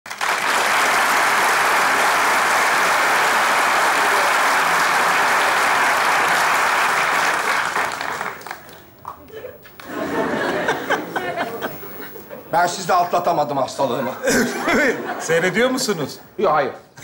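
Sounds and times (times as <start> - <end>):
large audience applauding: 0.1 - 10.8.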